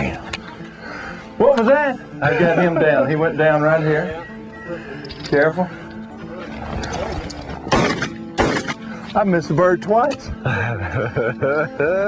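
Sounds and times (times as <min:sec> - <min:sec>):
shotgun shots: 0:07.7 - 0:08.8.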